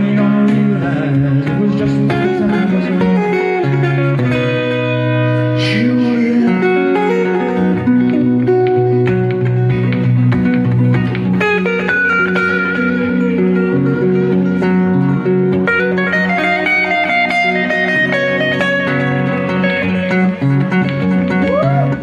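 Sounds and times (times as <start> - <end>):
acoustic guitar picking: 0.0 - 22.0.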